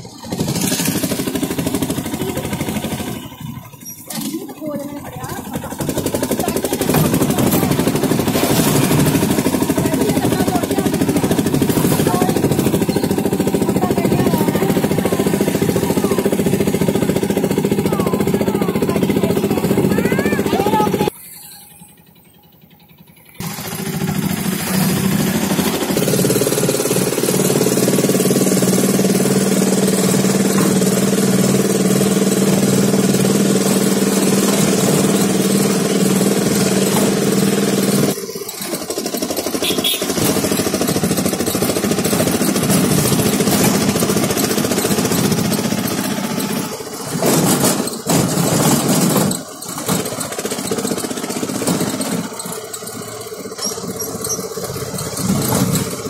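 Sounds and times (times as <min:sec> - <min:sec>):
vehicle engine humming: 0:00.0 - 0:56.0.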